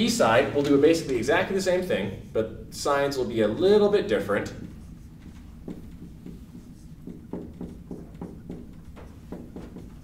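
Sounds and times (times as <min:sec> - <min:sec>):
marker writing on a whiteboard: 0:04.0 - 0:10.0.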